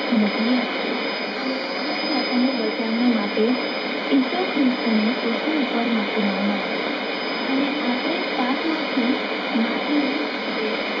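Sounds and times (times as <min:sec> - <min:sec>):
static and hiss: 0:00.0 - 0:11.0
faint radio voice talking: 0:07.5 - 0:11.0.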